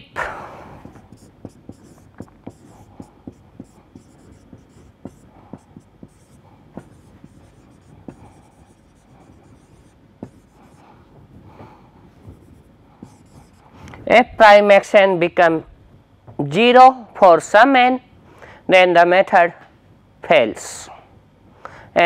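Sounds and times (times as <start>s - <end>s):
marker writing on whiteboard: 0.8s - 10.9s, 11.6s - 13.8s.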